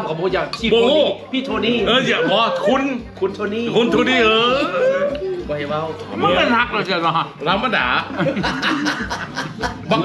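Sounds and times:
men talking: 0:00.0 - 0:10.0
men chuckling: 0:08.1 - 0:10.0.

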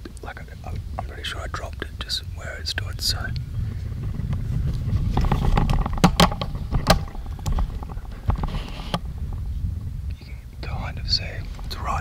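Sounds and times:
camera handling rumble: 0:03.0 - 0:10.3
sharp knocks and clicks: 0:05.1 - 0:09.4.

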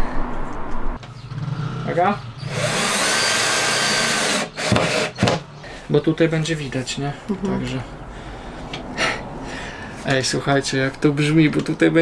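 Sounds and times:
cordless drill boring into wood: 0:02.4 - 0:05.4.

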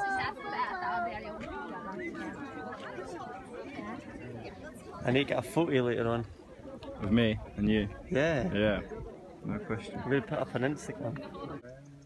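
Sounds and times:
background chatter of voices: 0:00.0 - 0:12.0.

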